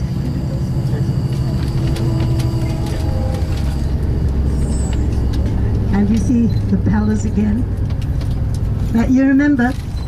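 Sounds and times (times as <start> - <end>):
bus engine and road noise: 0.0 - 10.0.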